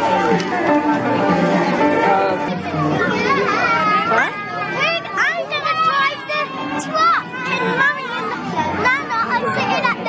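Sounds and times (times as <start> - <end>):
background music: 0.0 - 5.1
children chattering: 0.0 - 10.0.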